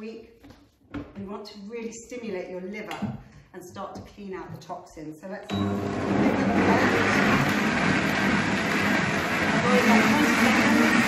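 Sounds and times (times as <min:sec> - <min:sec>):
blender motor running: 0:05.5 - 0:11.0.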